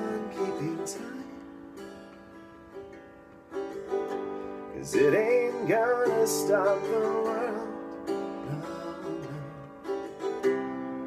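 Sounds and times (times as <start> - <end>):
guitar notes picked: 0.0 - 11.0.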